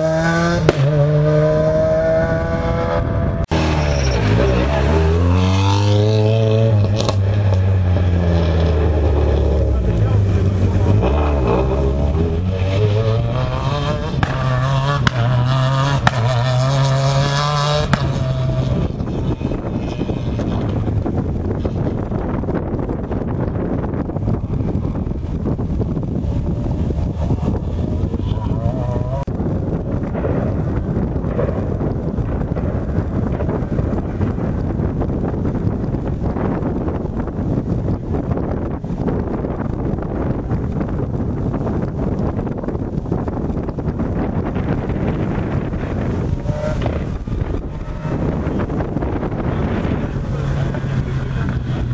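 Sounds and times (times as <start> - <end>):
rally car engine revving: 0.0 - 51.9
wind noise: 0.0 - 51.9.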